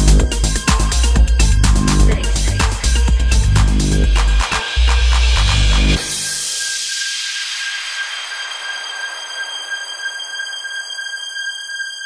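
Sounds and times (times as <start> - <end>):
high sustained synth tones: 0.0 - 12.0.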